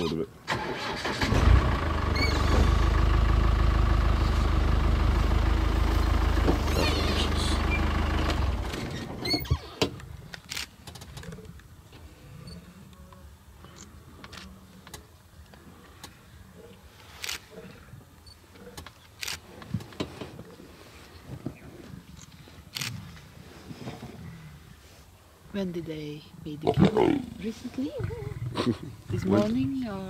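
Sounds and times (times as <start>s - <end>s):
vehicle engine running: 1.3s - 9.2s.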